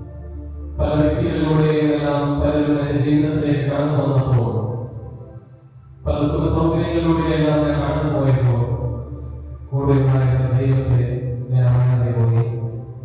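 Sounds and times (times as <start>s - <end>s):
man chanting a sung prayer: 0.8s - 4.9s, 6.1s - 9.1s, 9.7s - 13.0s.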